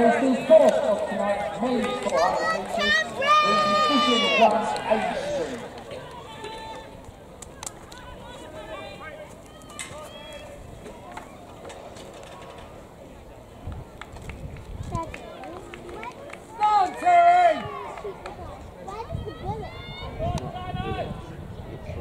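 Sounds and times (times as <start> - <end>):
distant spectators' voices: 0.0 - 22.0
person shouting cheer: 2.8 - 5.6.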